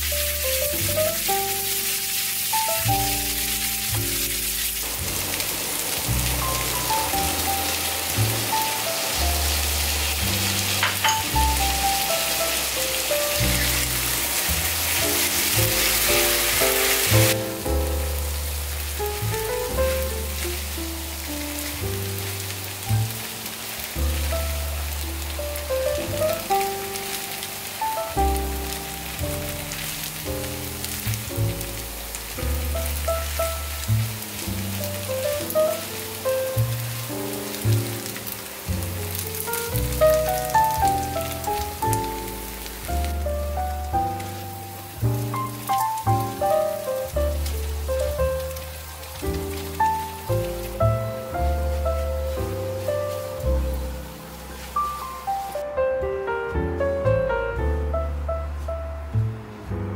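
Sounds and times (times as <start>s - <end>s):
noodles sizzling in a pan: 0.0s - 55.6s
background music with bass line: 0.0s - 59.9s.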